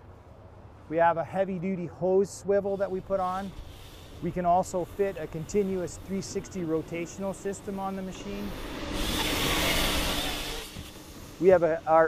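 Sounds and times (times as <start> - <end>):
engine and hydraulics rushing: 2.5 - 12.0.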